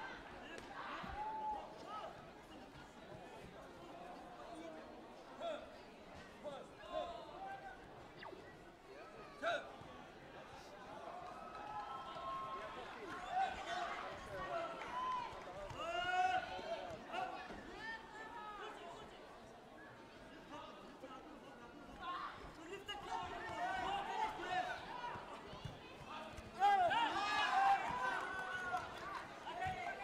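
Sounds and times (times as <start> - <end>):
voices in a hall: 0.0 - 30.0.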